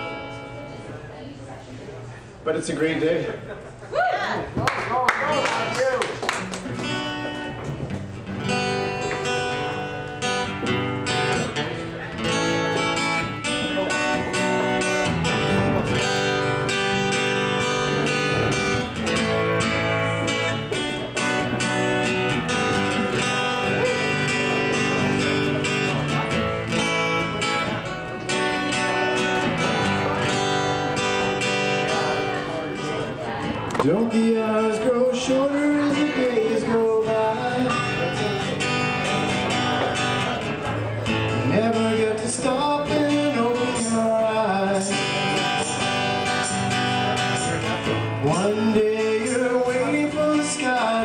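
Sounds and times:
acoustic guitar strumming chords: 0.0 - 0.9, 5.3 - 51.0.

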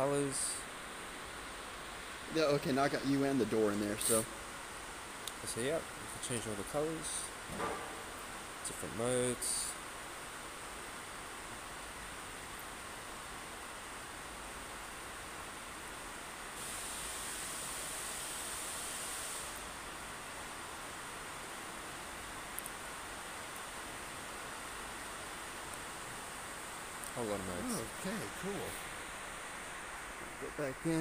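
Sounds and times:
faint room noise hiss: 0.0 - 31.0
louder higher hiss: 1.8 - 4.4, 16.5 - 19.9, 24.9 - 31.0
faint clicks: 22.5 - 22.8, 27.0 - 27.2.

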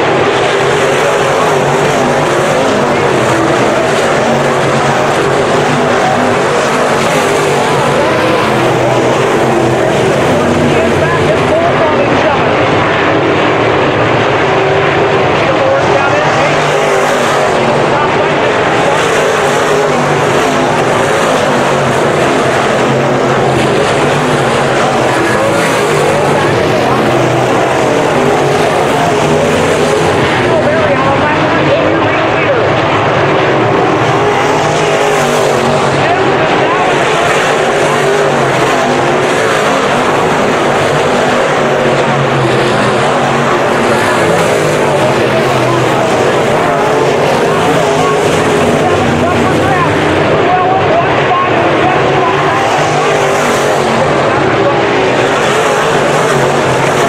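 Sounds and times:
race car engines roaring: 0.0 - 57.0.

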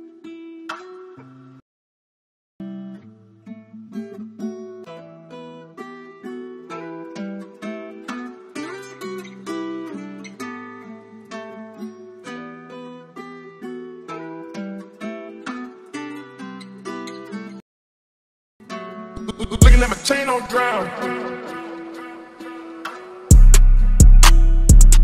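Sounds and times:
plucked guitar melody: 0.0 - 1.6, 2.6 - 17.6, 18.6 - 25.0.

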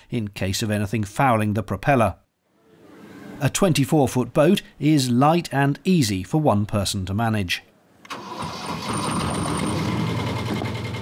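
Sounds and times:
diesel engine starting: 8.0 - 11.0.

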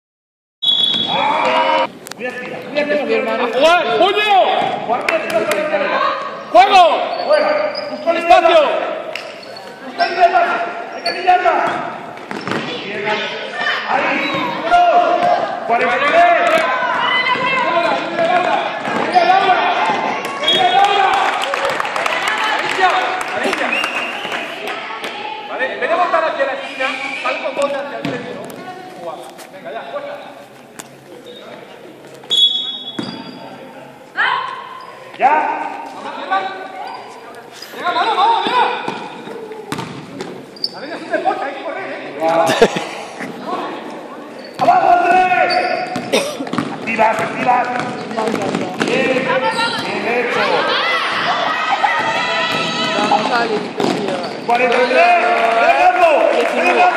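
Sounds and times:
referee whistle blast: 0.6 - 1.2, 32.3 - 33.2
basketball bouncing on floor: 11.6 - 12.7, 39.7 - 40.3, 45.8 - 49.9
people shouting: 13.5 - 21.2, 49.3 - 53.4.

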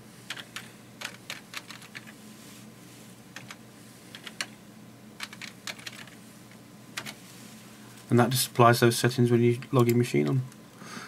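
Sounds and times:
keyboard typing clicks: 5.2 - 6.2.

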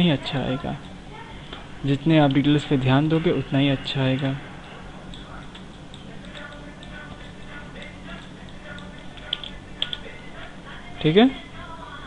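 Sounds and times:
low room hum: 0.0 - 12.0
computer mouse clicks: 8.5 - 10.0.

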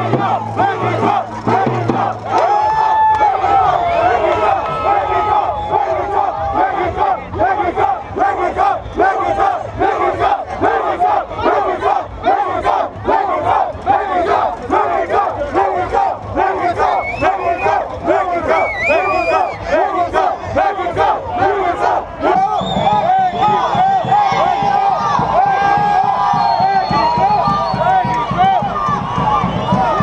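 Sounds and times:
crowd chanting and shouting: 0.0 - 30.0.

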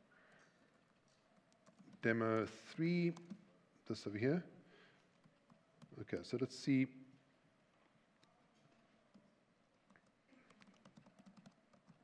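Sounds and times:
laptop keyboard typing: 0.3 - 2.1, 5.1 - 6.0, 9.1 - 12.0.

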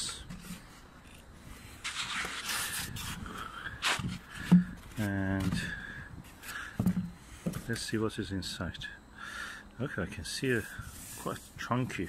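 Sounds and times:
packaging rustling and scraping: 0.3 - 3.2, 10.6 - 12.0.

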